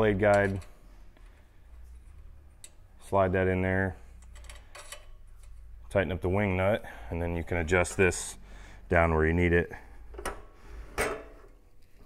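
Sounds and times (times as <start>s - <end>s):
metal clicks and scrape: 4.2s - 5.6s.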